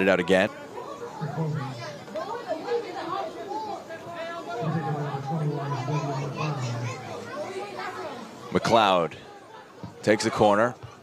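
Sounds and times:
players calling out: 1.0s - 2.3s, 4.6s - 7.6s.

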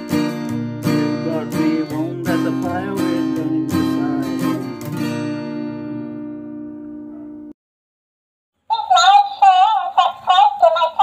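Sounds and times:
toy singing in electronic voice: 8.7s - 11.0s.

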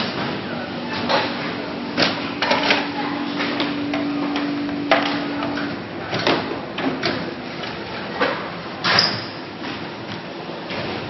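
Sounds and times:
machine humming: 0.5s - 8.8s.

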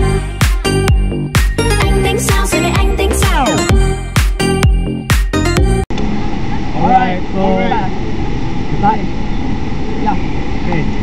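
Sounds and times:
pop song with a beat: 0.0s - 5.8s.

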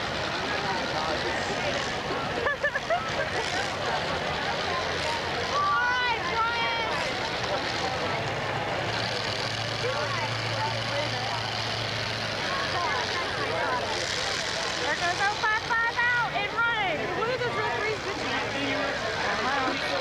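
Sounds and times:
crowd noise: 0.0s - 20.0s
voices: 0.0s - 20.0s.

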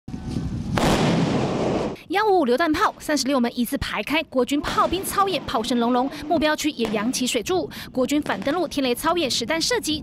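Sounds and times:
howitzer firing blast: 0.8s - 2.0s.

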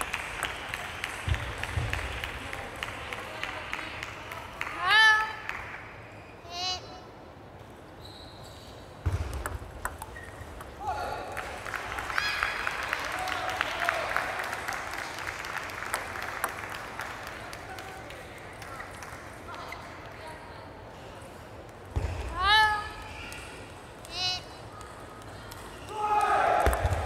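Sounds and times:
table tennis balls clicking: 9.3s - 10.8s.

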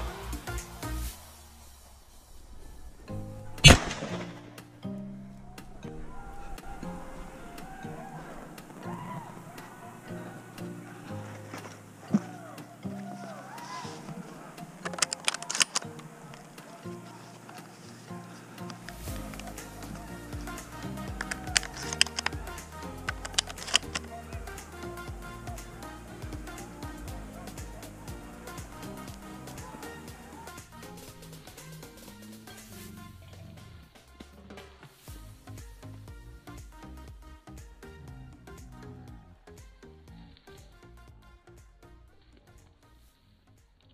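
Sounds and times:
background music: 0.0s - 43.9s
shotgun shot: 3.6s - 4.6s.

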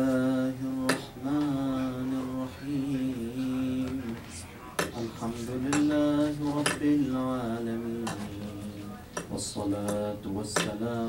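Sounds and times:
man chanting into a microphone: 0.0s - 11.0s.

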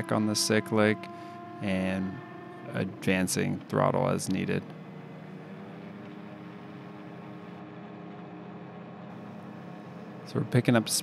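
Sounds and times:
aircraft engine and propeller drone: 0.0s - 11.0s.

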